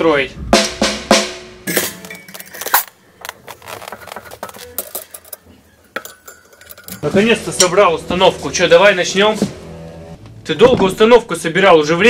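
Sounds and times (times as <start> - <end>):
metallic clinks of drum hardware: 1.7 - 7.1.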